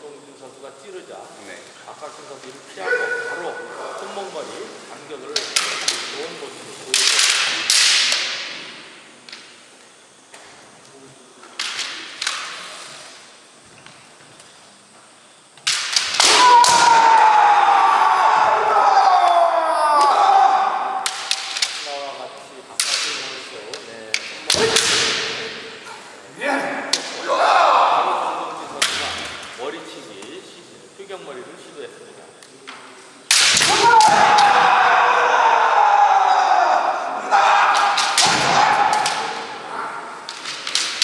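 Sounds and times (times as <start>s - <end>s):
loud kiai shouts: 2.8s - 3.8s, 16.2s - 21.6s, 24.5s - 28.6s, 33.5s - 40.3s
bamboo sword strikes cracking: 33.3s - 34.5s.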